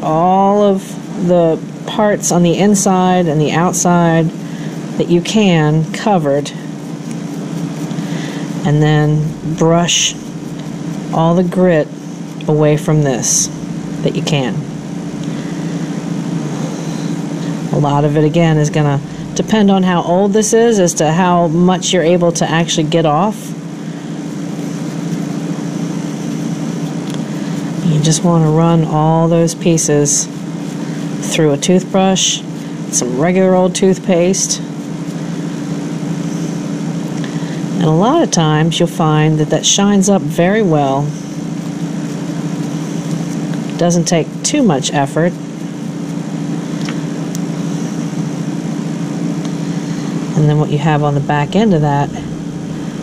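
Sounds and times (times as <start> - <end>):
ventilation fan hum: 0.0 - 53.0.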